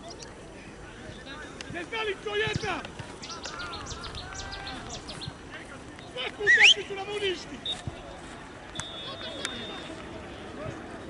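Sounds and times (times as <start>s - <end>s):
players calling out: 1.0s - 8.0s.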